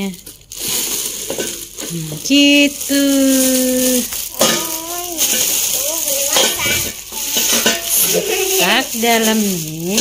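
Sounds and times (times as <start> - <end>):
plastic bag crinkling: 0.0 - 10.0
child's voice: 4.2 - 9.1.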